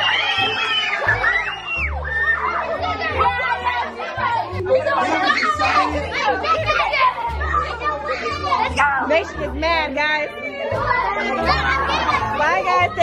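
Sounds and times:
children chattering and calling out: 0:00.0 - 0:13.0
party music with bass line: 0:08.7 - 0:09.5.

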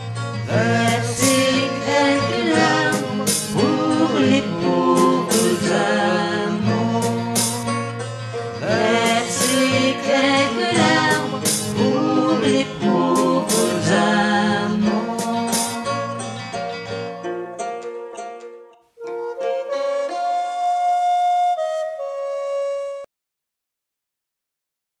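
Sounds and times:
banjo: 0:00.0 - 0:20.9
recorder melody: 0:00.0 - 0:23.1.

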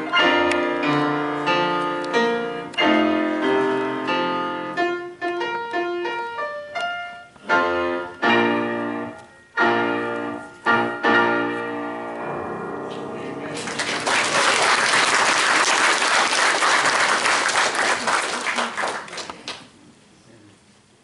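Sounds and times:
grand piano played four-hands: 0:00.0 - 0:14.9.

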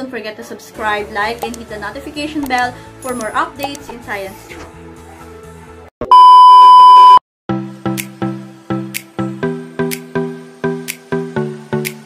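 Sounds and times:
test-tone beep: 0:06.1 - 0:07.2
music with repeating notes: 0:07.6 - 0:12.0.

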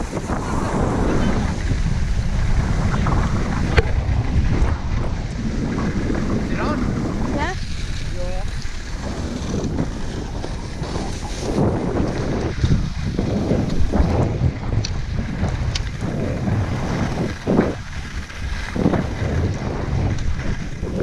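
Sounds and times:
skis scraping over snow: 0:00.0 - 0:21.0
wind buffeting microphone: 0:00.0 - 0:21.0.

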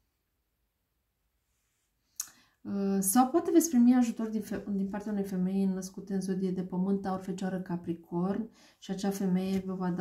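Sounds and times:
woman speaking: 0:02.7 - 0:10.0.

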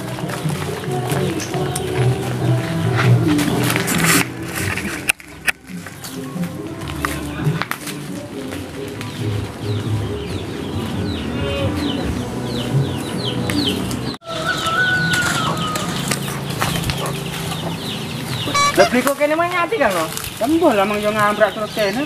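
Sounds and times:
chickens clucking: 0:00.0 - 0:22.0
short high peeps: 0:18.5 - 0:19.1.

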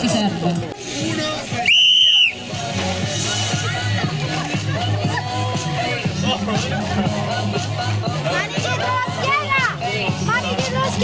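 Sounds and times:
background music: 0:00.0 - 0:11.0
crowd chatter: 0:00.0 - 0:11.0
whistle blast: 0:01.6 - 0:02.4.

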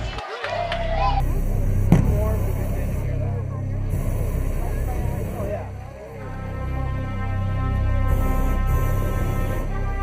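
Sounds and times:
crowd chatter: 0:00.0 - 0:10.0
truck engine running low: 0:01.2 - 0:10.0.

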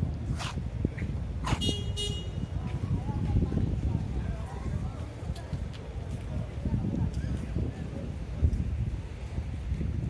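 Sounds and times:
wind rumble on microphone: 0:00.0 - 0:10.0
short horn toot: 0:01.5 - 0:02.5.

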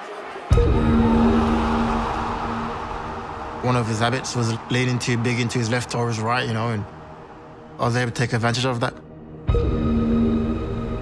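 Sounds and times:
deep cinematic boom: 0:00.5 - 0:05.6.

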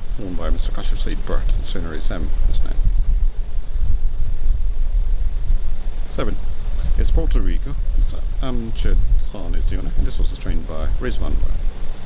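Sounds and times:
faint hiss: 0:00.0 - 0:12.0
loud low rumble: 0:00.0 - 0:12.0.

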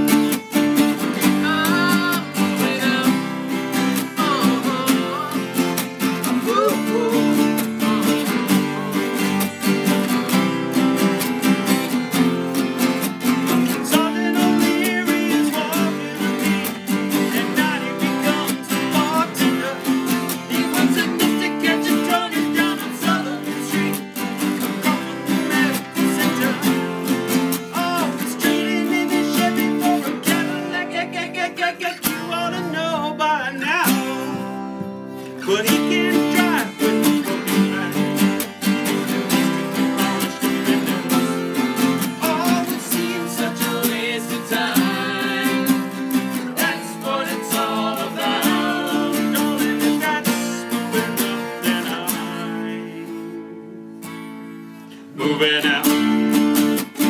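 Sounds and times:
acoustic guitars strumming chords: 0:00.0 - 0:57.0.

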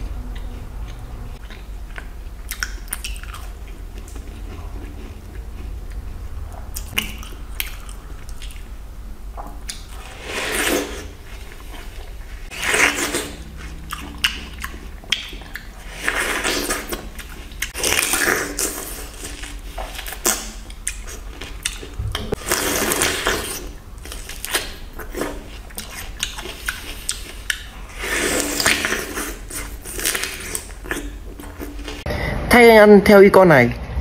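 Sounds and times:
person chewing watermelon: 0:00.0 - 0:32.1.

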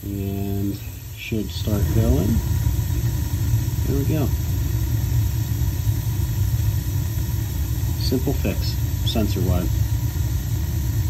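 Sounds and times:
gas boiler burner rumble: 0:00.0 - 0:11.0.

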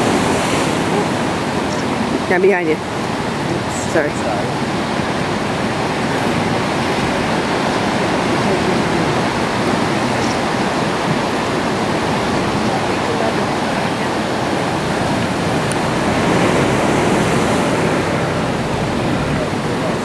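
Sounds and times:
surf breaking on rocks: 0:00.0 - 0:20.0.

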